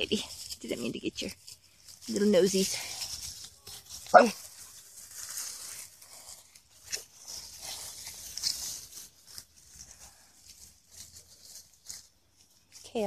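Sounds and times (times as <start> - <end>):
dry leaves crunching underfoot: 0.0 - 13.0.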